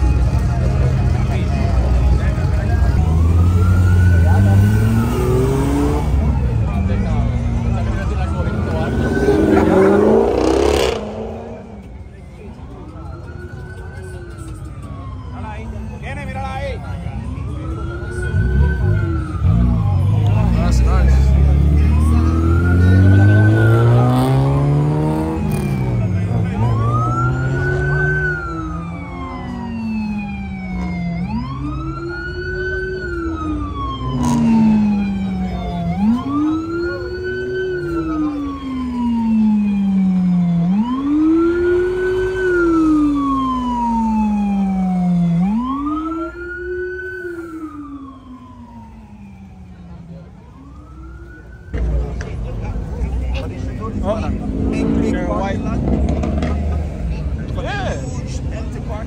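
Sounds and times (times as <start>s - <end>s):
police siren wailing: 0.0s - 59.0s
car engine revving: 2.8s - 12.5s, 17.6s - 32.1s, 32.8s - 46.2s, 51.8s - 59.0s.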